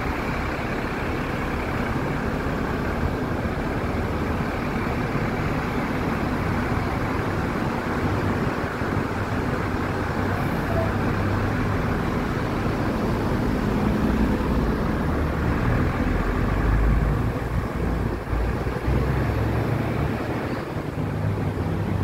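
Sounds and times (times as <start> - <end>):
road traffic roar: 0.0 - 22.0.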